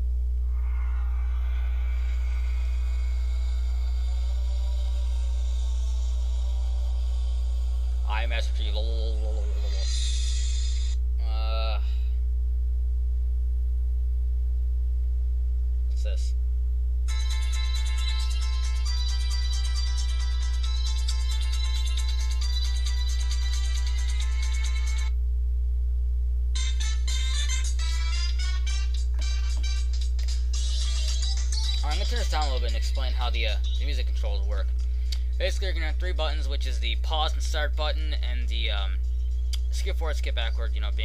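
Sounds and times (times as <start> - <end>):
faint steady tones: 0.0 - 12.2
low electrical mains hum: 0.0 - 41.0
voice: 7.9 - 12.1, 15.9 - 16.4, 31.8 - 34.7, 35.4 - 39.0, 39.6 - 41.0
music from phone loudspeaker: 17.1 - 25.1, 26.6 - 34.0.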